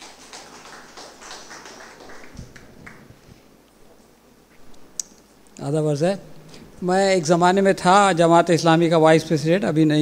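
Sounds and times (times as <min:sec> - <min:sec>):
people clapping: 0:00.0 - 0:03.3.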